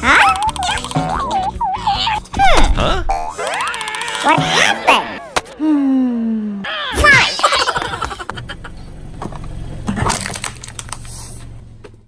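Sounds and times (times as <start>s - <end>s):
car engine humming: 4.4s - 12.0s
tyre crushing toy crackling: 10.0s - 11.2s.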